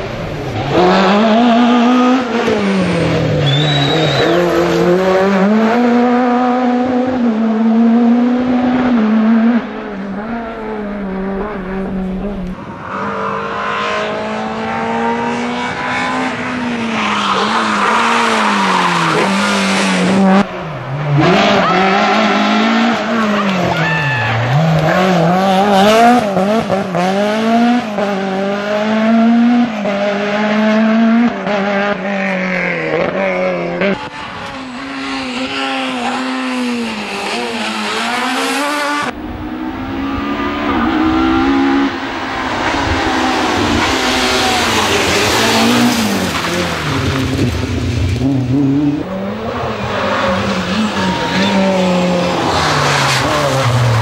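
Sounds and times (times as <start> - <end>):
rally car engines revving hard: 0.0 - 54.0.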